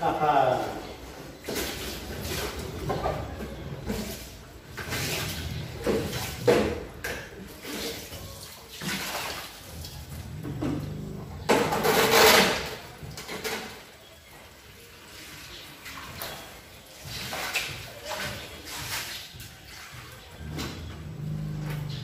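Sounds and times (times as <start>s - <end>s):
water pouring and splashing: 0.3s - 22.0s.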